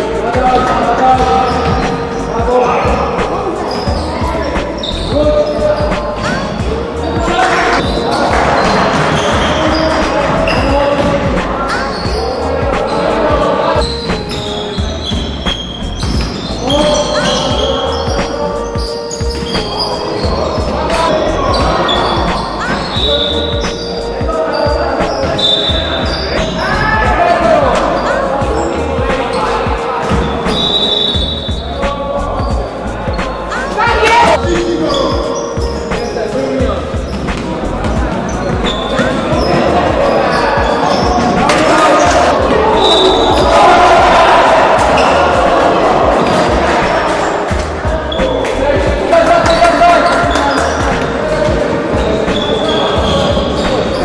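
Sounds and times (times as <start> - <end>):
players' voices: 0.0 - 54.0
sneaker squeaks: 0.3 - 54.0.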